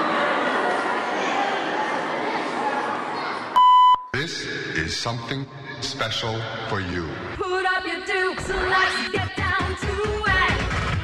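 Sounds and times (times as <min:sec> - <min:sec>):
hubbub of spectators' voices: 0:00.0 - 0:03.7
loud electronic beep: 0:03.6 - 0:04.1
cheer routine music: 0:08.0 - 0:11.0.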